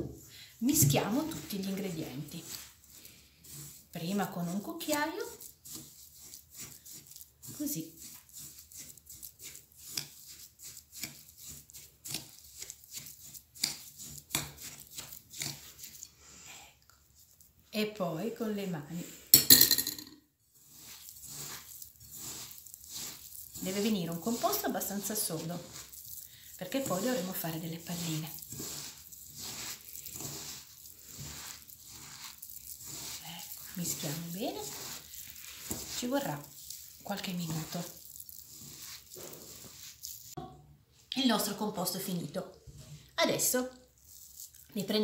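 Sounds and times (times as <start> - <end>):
hands kneading dough squishing: 0.0 - 16.1, 20.4 - 40.5, 43.3 - 45.0.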